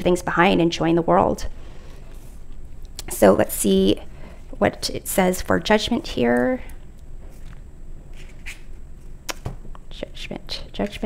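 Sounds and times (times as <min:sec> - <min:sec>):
paper pages rustling: 0:07.3 - 0:09.1.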